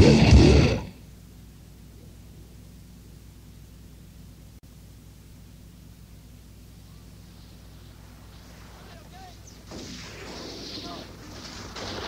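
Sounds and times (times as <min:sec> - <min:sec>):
low tape hum: 0:00.0 - 0:12.0.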